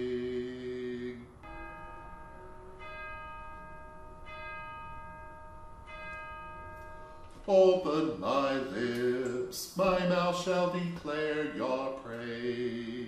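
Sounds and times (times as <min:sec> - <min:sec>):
man singing a hymn note: 0:00.0 - 0:01.4, 0:07.4 - 0:13.0
bell ringing: 0:01.4 - 0:10.7.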